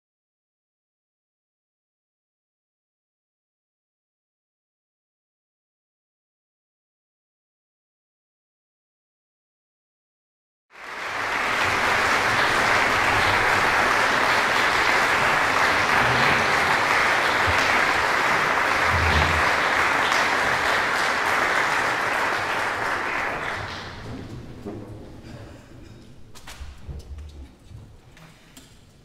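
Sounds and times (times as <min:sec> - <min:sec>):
audience applauding: 0:10.7 - 0:24.5.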